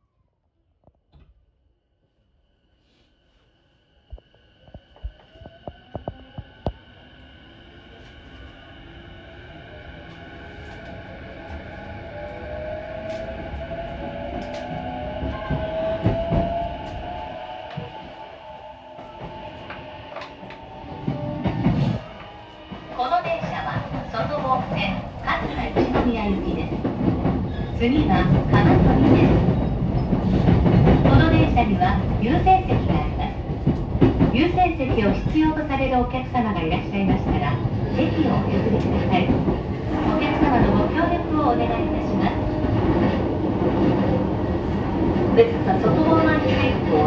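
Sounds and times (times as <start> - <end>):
train rumble: 4.1 - 47.0.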